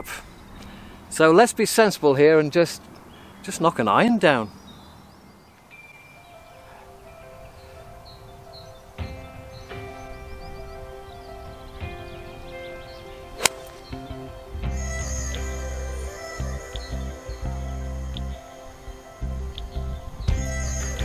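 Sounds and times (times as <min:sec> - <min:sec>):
gentle background music: 0:05.4 - 0:21.0
golf club striking ball: 0:13.4 - 0:14.2.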